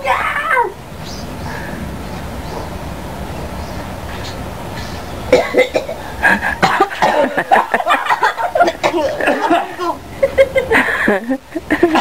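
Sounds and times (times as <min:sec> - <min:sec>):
person coughing and laughing: 0:05.3 - 0:07.7, 0:08.5 - 0:09.8, 0:11.7 - 0:12.0.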